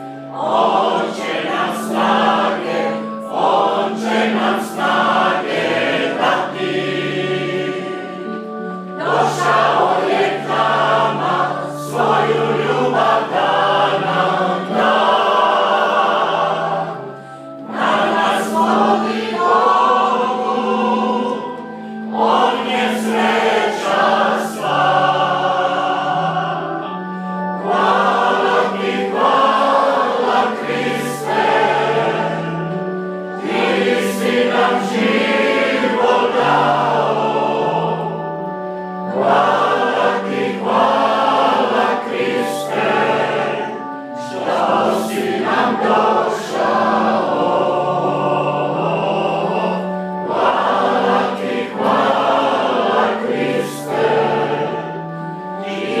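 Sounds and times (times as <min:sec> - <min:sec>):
mixed choir singing a hymn: 0:00.0 - 0:56.0.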